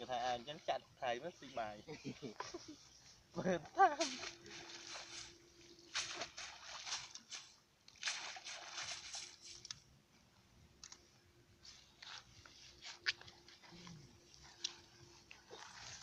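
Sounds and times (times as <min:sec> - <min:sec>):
faint steady hum: 0:00.0 - 0:16.0
cast net rustling: 0:03.9 - 0:09.9, 0:11.6 - 0:16.0
footsteps in wet grass: 0:03.9 - 0:09.9, 0:11.6 - 0:16.0.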